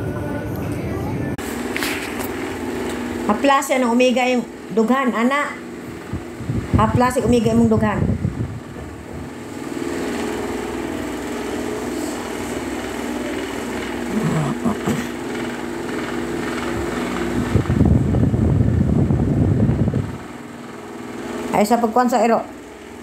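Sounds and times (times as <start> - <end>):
electric hair clippers buzzing: 9.7 - 17.5.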